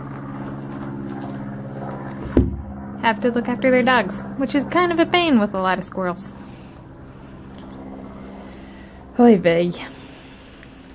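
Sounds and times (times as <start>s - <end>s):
low mechanical hum: 0.0s - 10.9s.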